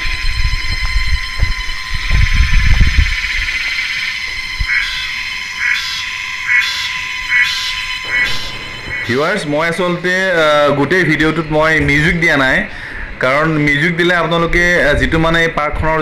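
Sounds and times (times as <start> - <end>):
pulsing insect call: 0.0 - 11.4
cicadas droning: 0.0 - 15.7
low microphone rumble: 8.0 - 16.0.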